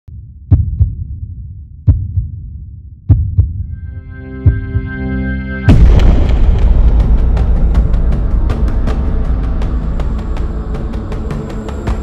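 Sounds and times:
heartbeat thumps: 0:00.1 - 0:05.0
low hum: 0:00.1 - 0:12.0
synth music tones: 0:03.7 - 0:06.8.

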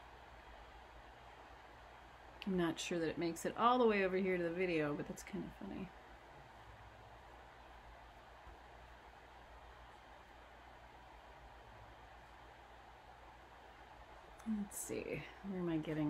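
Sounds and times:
faint hiss: 0:00.0 - 0:16.0.

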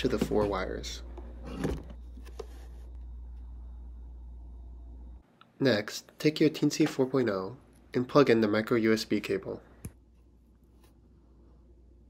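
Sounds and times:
steady low hum: 0:00.0 - 0:06.2.

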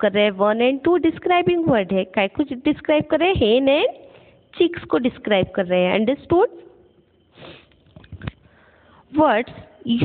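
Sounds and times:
nose sniff: 0:07.3 - 0:07.8.

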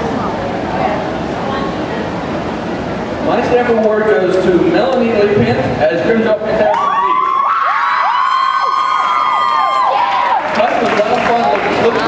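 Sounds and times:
audience cheering and screaming: 0:06.7 - 0:12.0.

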